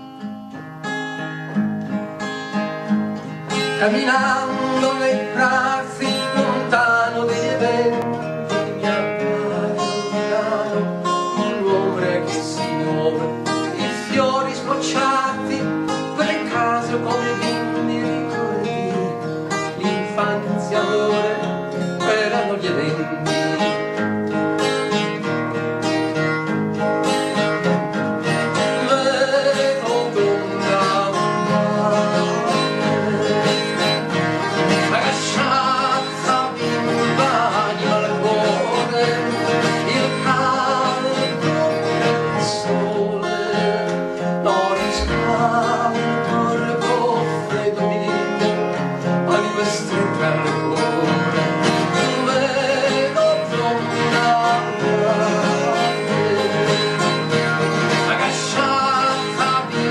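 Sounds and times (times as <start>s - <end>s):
acoustic guitar playing: 0.0s - 59.9s.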